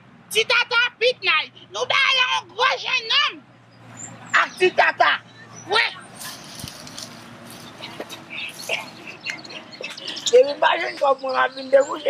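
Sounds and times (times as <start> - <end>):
dry leaves rustling and crackling: 6.2 - 8.8.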